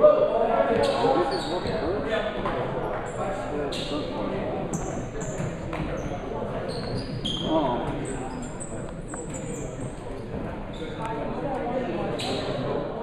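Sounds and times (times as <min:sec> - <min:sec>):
sneaker squeaks on hardwood: 0:00.8 - 0:01.9, 0:04.7 - 0:10.9.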